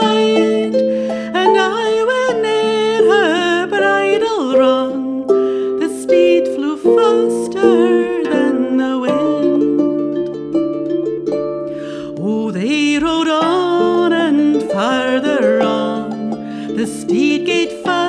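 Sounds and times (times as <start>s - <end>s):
woman singing: 0.0s - 10.3s, 11.9s - 18.0s
plucked strings: 0.0s - 18.0s.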